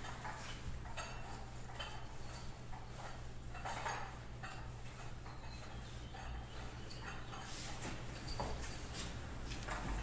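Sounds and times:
thurible chains clinking: 0:00.0 - 0:10.0.

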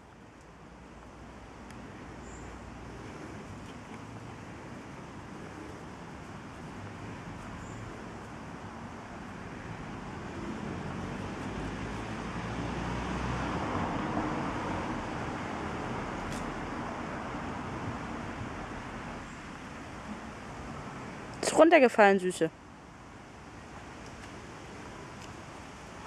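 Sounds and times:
road traffic noise: 0:00.0 - 0:26.0
vehicle passing: 0:01.2 - 0:21.4.

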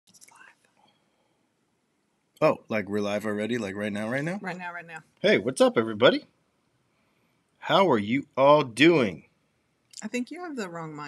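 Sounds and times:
faint whisper: 0:00.1 - 0:00.6, 0:02.4 - 0:06.2, 0:07.6 - 0:09.2.

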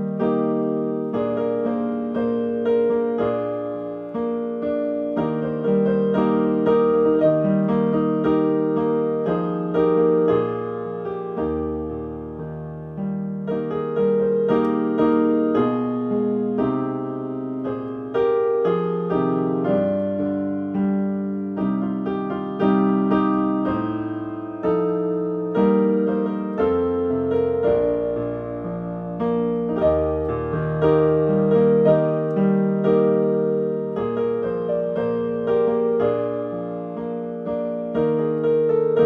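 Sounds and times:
digital piano classical piece: 0:00.0 - 0:39.0.

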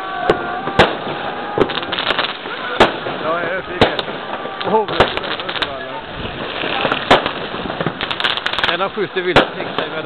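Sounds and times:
firework bang: 0:00.0 - 0:10.0
rapid firecracker cracks: 0:00.0 - 0:10.0.

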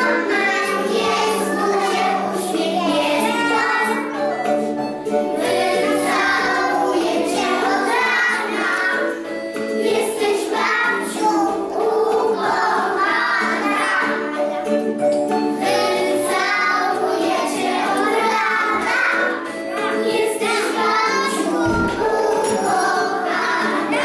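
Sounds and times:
children singing: 0:00.0 - 0:24.0
instrumental accompaniment: 0:00.0 - 0:24.0.

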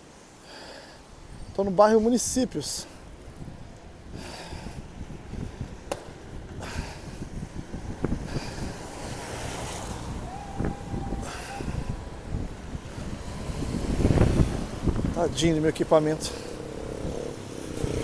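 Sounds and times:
traffic hiss on wet road: 0:00.0 - 0:18.0
wind buffeting microphone: 0:03.0 - 0:18.0
car passing close: 0:07.7 - 0:18.0.

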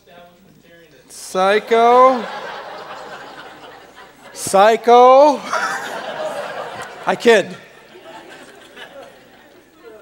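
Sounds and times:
faint chatter of people: 0:00.0 - 0:10.0
voices calling out: 0:01.2 - 0:10.0.

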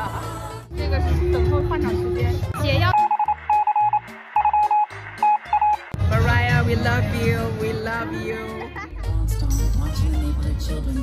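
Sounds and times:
rapid high electronic beeps: 0:02.9 - 0:05.9.

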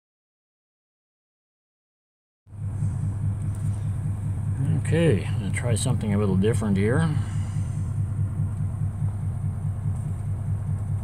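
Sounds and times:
car engine rumbling: 0:02.5 - 0:11.0
man speaking: 0:04.6 - 0:07.6.

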